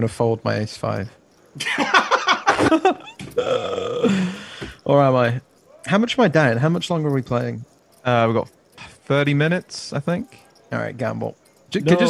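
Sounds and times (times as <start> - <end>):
person's wordless vocal sound: 3.3 - 5.0.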